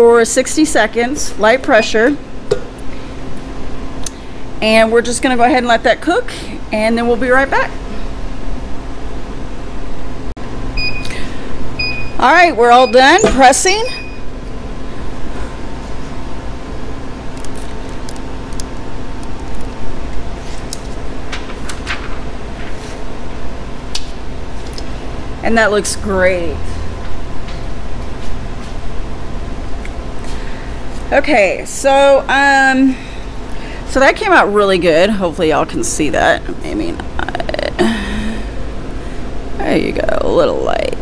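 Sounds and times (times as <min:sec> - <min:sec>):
heat press humming: 0:01.0 - 0:04.6, 0:07.3 - 0:39.6.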